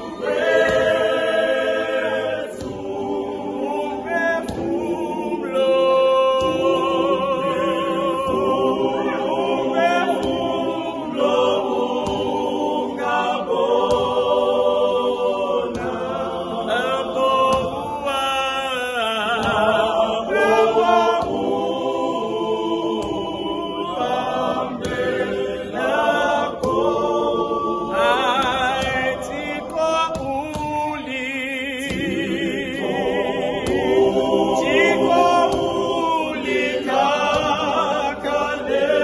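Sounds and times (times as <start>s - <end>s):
choir singing a hymn: 0.0s - 39.0s.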